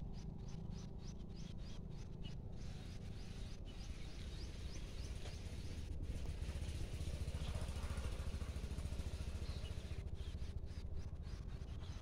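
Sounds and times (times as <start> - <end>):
small engine running: 3.2 - 12.0.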